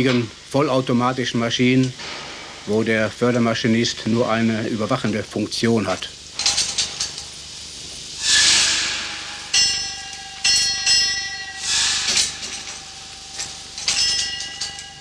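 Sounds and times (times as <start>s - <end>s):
steam hissing: 0.0s - 15.0s
metallic clangs ringing: 2.0s - 2.9s, 8.2s - 15.0s.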